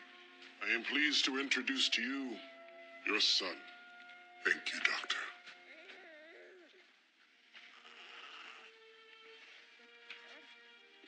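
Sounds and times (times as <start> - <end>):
newborn baby whimpering: 5.5 - 7.0, 7.6 - 8.8, 9.9 - 11.0.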